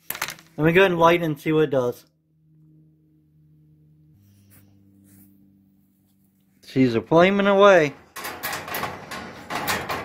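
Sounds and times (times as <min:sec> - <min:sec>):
faint low hum: 0:00.1 - 0:10.0.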